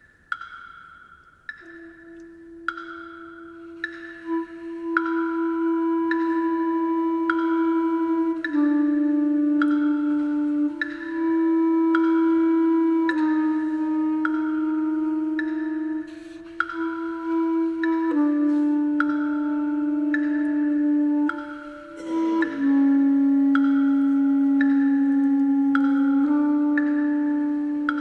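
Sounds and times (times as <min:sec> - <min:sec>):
bell-like mallet percussion: 0:00.0 - 0:04.2, 0:21.4 - 0:23.0
low wind instrument note: 0:01.6 - 0:28.0
glockenspiel note ringing: 0:21.8 - 0:22.7.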